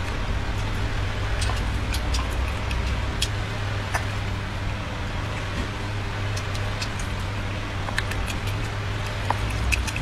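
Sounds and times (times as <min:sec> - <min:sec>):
chewing clicks: 0:00.0 - 0:04.3, 0:06.2 - 0:10.0
steady low hum: 0:00.0 - 0:10.0.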